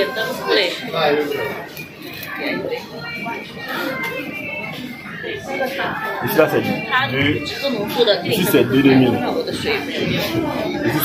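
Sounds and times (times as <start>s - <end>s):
faint music: 0.0s - 11.0s
indistinct talking: 0.0s - 11.0s.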